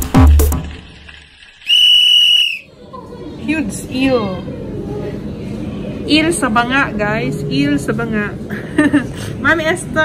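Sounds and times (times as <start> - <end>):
high whistle-like tone: 1.6 - 2.7.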